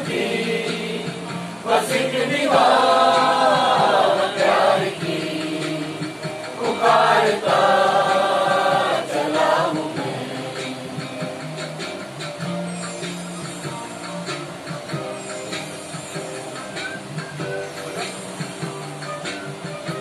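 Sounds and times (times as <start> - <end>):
group singing in chorus: 0.0 - 11.5.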